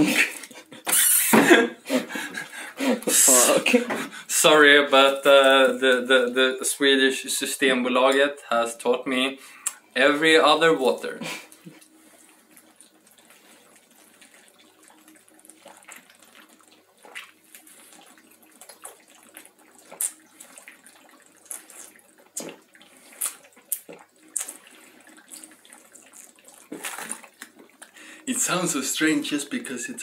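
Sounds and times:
person gulping water: 0.0s - 4.3s, 11.4s - 28.0s
water and ice sloshing: 11.7s - 29.5s.

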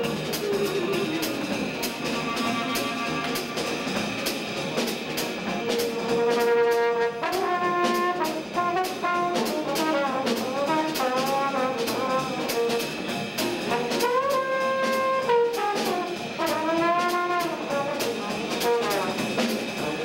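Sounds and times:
steady cymbal beat: 0.0s - 20.0s
trombone playing: 0.0s - 20.0s.

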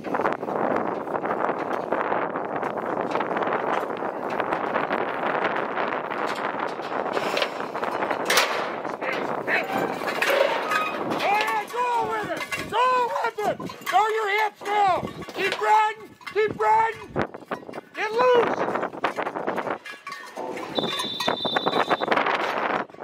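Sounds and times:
metal rails rattling: 0.0s - 23.0s.

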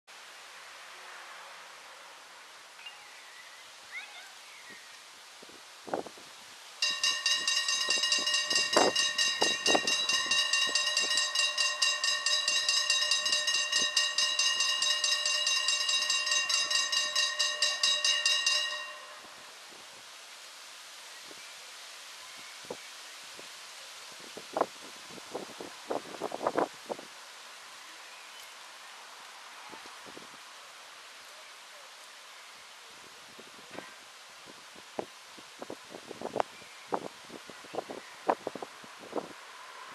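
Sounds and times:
level crossing warning bell: 6.8s - 19.6s.

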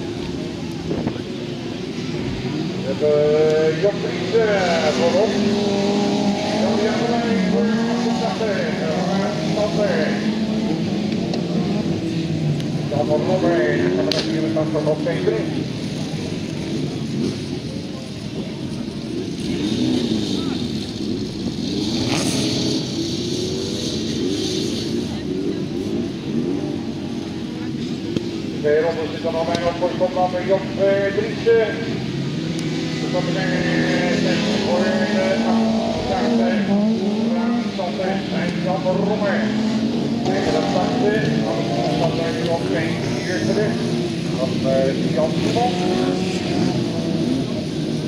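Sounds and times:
race car engines revving: 0.0s - 48.0s.

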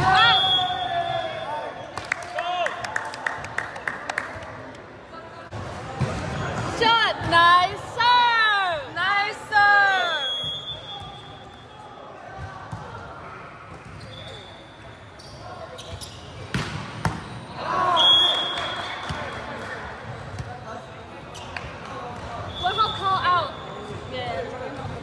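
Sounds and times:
volleyball slaps: 16.5s - 17.3s.

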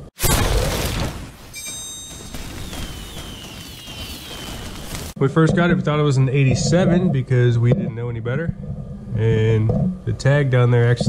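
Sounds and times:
high whistle gliding down: 1.6s - 5.1s
fiery hiss with crackles: 2.4s - 5.2s.

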